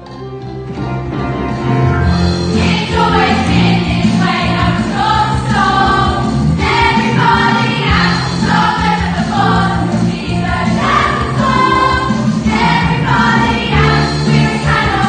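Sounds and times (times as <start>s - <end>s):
electric keyboard bass notes: 0.0s - 15.0s
chorus singing show tune: 2.4s - 15.0s.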